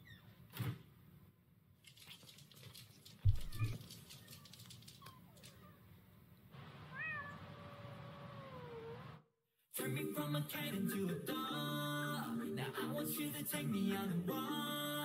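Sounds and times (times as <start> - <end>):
cat meowing: 6.9 - 9.1.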